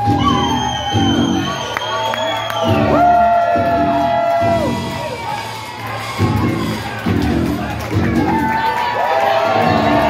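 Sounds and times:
crowd cheering and yelling: 0.0s - 10.0s
music over loudspeakers: 2.6s - 10.0s.

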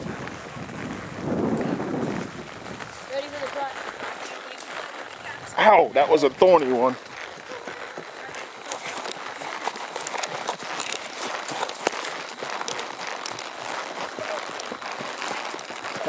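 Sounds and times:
horse hooves clicking: 0.0s - 16.0s.

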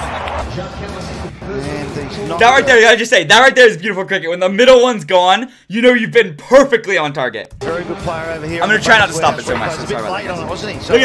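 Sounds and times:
background music: 0.0s - 5.2s, 6.0s - 11.0s.

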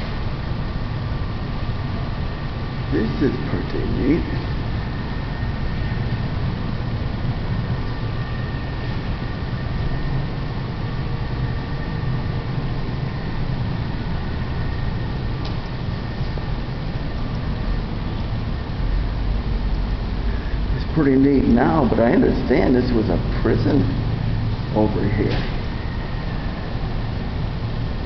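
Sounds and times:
low rumbling noise: 0.0s - 28.0s.

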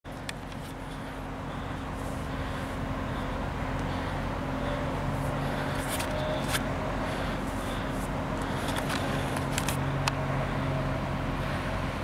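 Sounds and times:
low engine drone: 0.1s - 12.0s.

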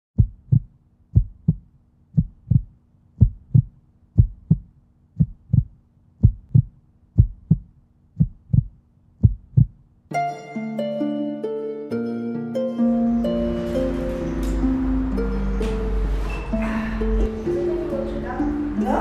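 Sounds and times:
heartbeat thumps: 0.2s - 9.8s.

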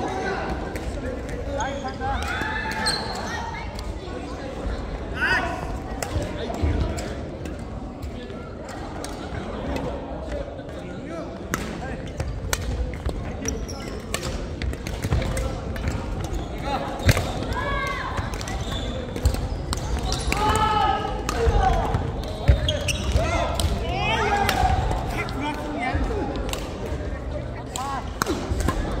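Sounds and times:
rackets striking shuttlecocks: 17.0s - 23.8s, 27.7s - 29.0s.

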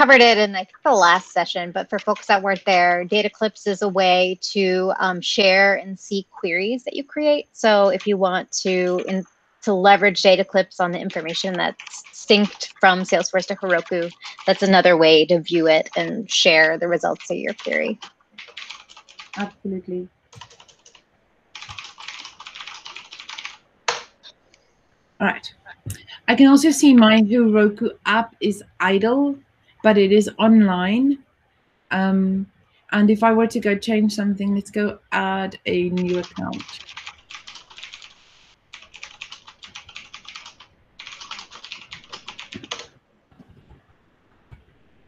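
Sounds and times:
typing on computer keyboard: 11.2s - 14.8s, 17.2s - 19.5s, 20.3s - 24.1s, 35.9s - 42.9s.

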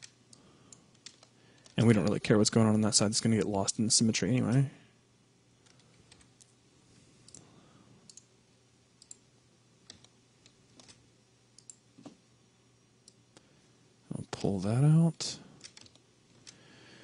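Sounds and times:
computer mouse clicking: 0.0s - 2.2s, 5.6s - 6.4s, 8.1s - 8.3s, 9.0s - 9.2s, 9.8s - 11.0s, 11.6s - 12.1s, 15.6s - 16.6s
low steady hum: 0.0s - 17.0s.

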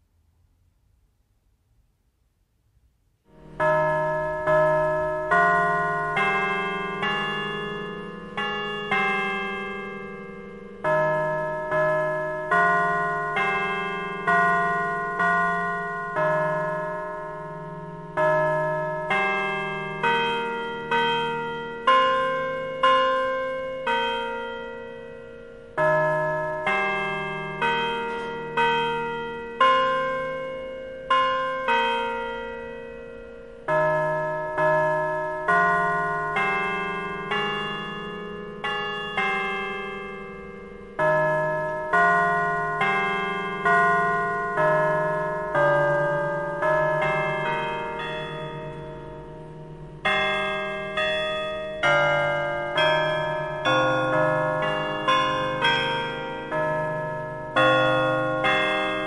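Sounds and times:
bells ringing a slow tune: 3.3s - 59.0s.

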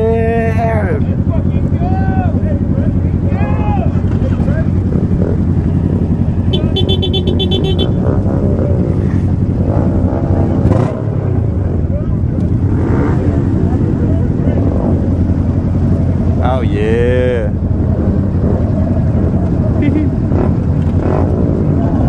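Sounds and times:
motorcycle engines idling and revving: 0.0s - 22.0s
rapid high beeping: 6.5s - 8.0s.

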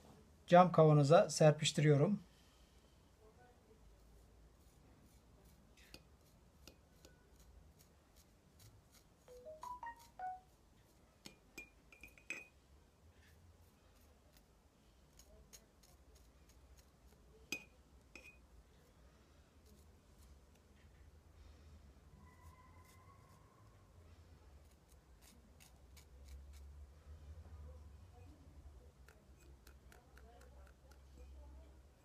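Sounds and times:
knife tapping on seed pod: 29.0s - 31.1s.

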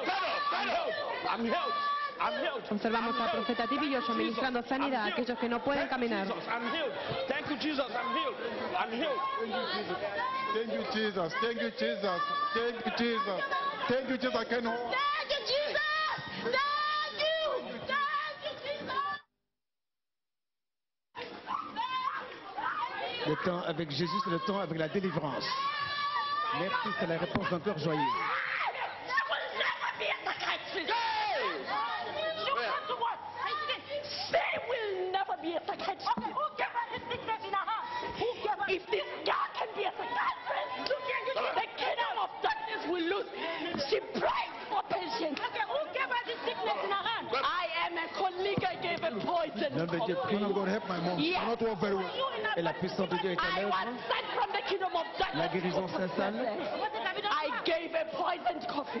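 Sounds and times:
people talking at once: 0.0s - 19.2s, 21.2s - 59.0s.

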